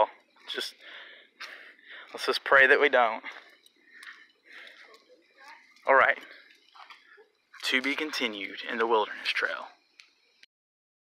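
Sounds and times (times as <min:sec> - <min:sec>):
man speaking: 0:00.0 - 0:00.9, 0:02.0 - 0:03.4, 0:05.8 - 0:06.3, 0:07.6 - 0:09.8.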